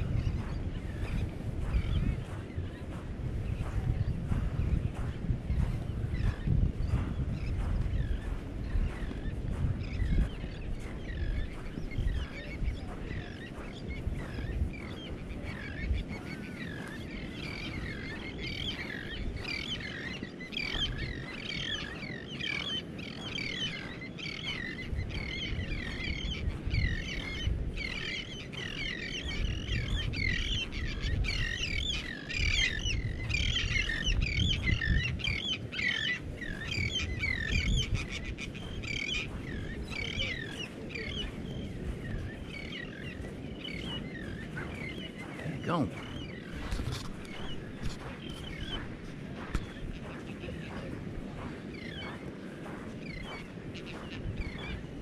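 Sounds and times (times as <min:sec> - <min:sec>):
flock of birds chirping: 0:00.0 - 0:55.0
wind rumble on microphone: 0:00.0 - 0:55.0.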